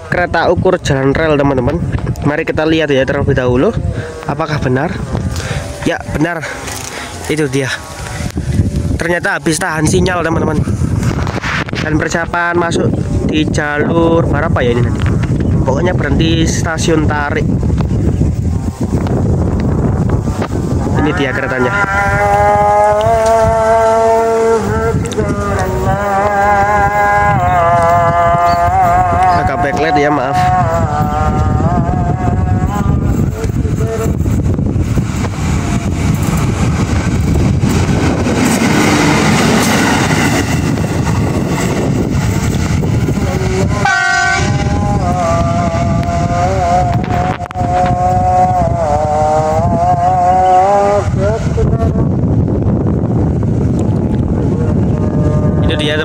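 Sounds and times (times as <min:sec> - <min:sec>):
rail car engine and wheels rumbling: 0:00.0 - 0:56.0
rail car horn blasts: 0:30.3 - 0:51.6.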